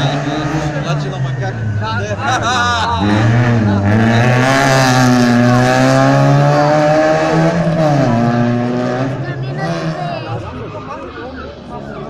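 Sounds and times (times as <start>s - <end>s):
rally car engine at high revs: 0.0s - 10.7s.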